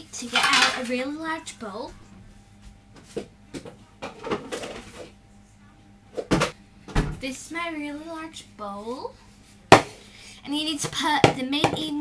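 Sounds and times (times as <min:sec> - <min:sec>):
mixing bowl knocks and clatter: 0:00.2 - 0:00.9, 0:10.8 - 0:12.0.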